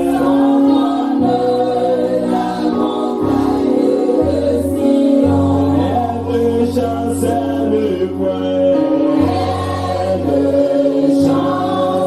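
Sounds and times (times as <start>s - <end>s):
group singing along: 0.0s - 12.0s
instrumental chords and bass: 0.0s - 12.0s
man singing into microphone: 4.6s - 9.3s.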